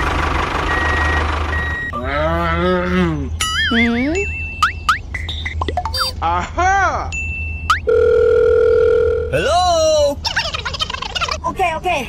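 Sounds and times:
vehicle engine running: 0.0 - 6.0
reversing beeper: 0.6 - 2.3
wobbling cartoon sound effect: 3.4 - 6.2.

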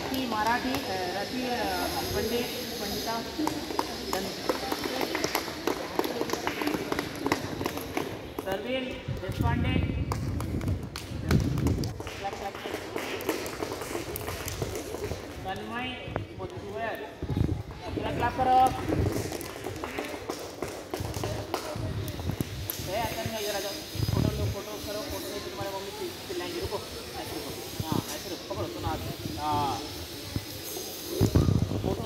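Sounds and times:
children chattering: 0.0 - 8.4, 16.6 - 22.6, 23.2 - 32.0
background hiss: 0.0 - 9.2, 9.8 - 32.0
children clapping hands: 3.2 - 9.4, 10.0 - 15.7, 18.6 - 23.2.

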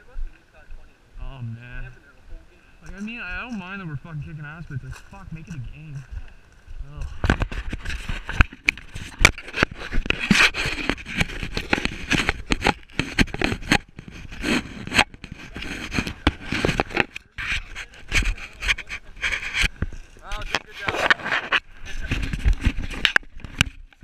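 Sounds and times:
clothing rubbing against camera: 7.0 - 24.0.

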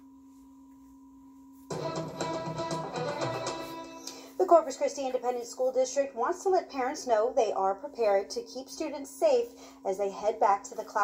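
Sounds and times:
faint hum of two tones: 0.0 - 4.4
guitar music: 1.7 - 4.2.

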